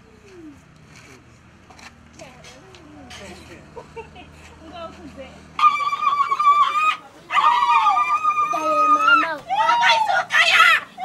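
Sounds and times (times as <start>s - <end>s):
people ululating: 5.6s - 11.0s.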